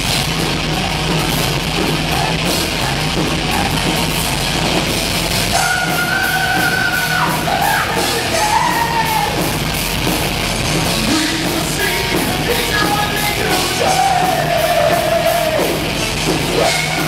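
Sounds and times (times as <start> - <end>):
distorted electric guitars: 0.0 - 17.0
drums: 0.0 - 17.0.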